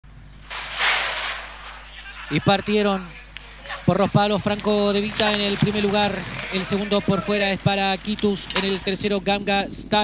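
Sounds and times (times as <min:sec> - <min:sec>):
starting gate clattering open: 0:00.4 - 0:02.3.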